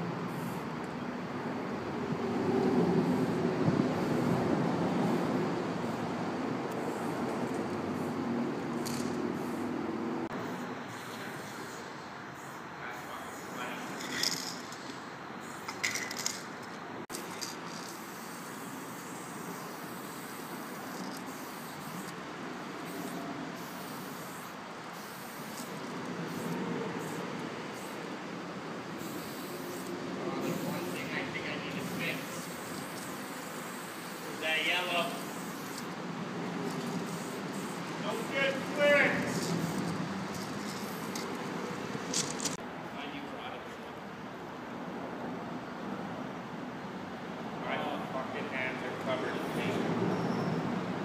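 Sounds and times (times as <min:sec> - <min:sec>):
distant traffic: 0:00.0 - 0:51.0.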